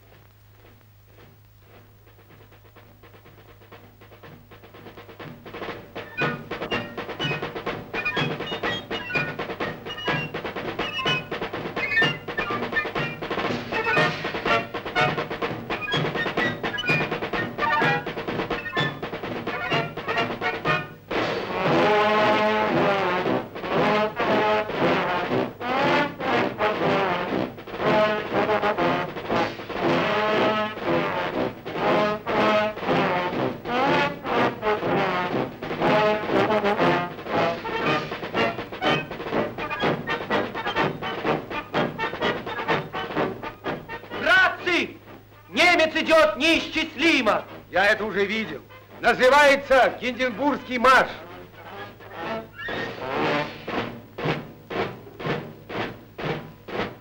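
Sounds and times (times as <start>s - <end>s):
drum beat with rolls: 0.0s - 57.0s
military march music: 0.0s - 57.0s
loud brass: 6.1s - 15.4s, 16.1s - 46.7s, 51.0s - 53.9s.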